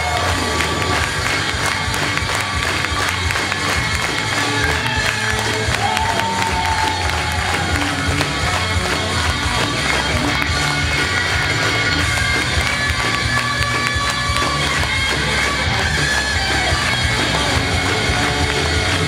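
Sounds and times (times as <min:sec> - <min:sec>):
pop-rock backing track: 0:00.0 - 0:19.0.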